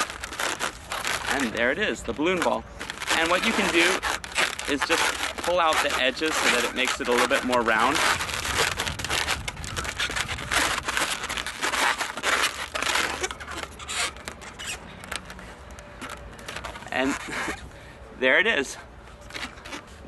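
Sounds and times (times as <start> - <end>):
balloons rubbing together: 0.0 - 17.8, 19.1 - 20.0.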